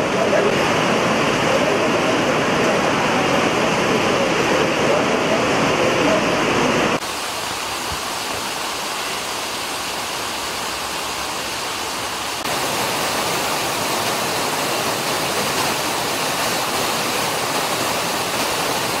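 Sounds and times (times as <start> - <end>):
rainwater rushing down stone steps: 0.0 - 19.0.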